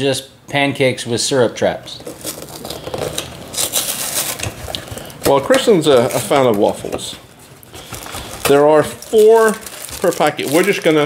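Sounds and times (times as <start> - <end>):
packaging rustling and crinkling: 1.9 - 11.0.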